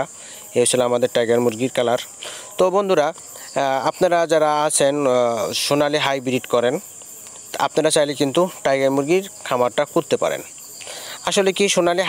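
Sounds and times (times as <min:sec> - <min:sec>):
high insect-like chirr: 0:00.0 - 0:12.0.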